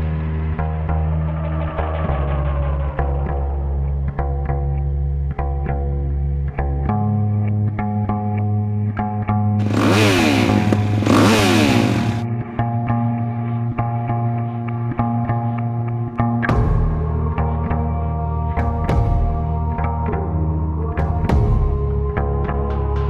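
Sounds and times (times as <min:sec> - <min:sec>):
background music with steady beat: 0:00.0 - 0:23.0
dirt bike engine revving: 0:09.6 - 0:12.2.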